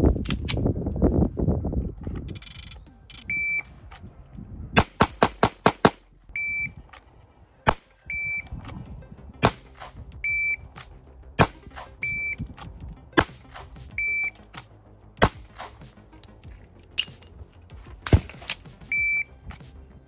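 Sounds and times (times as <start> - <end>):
shot timer beeps: 6.4 - 6.8, 10.2 - 10.7, 12.0 - 12.4, 13.9 - 14.4, 18.9 - 19.3
pistol shots: 9.4 - 10.0, 15.2 - 15.8.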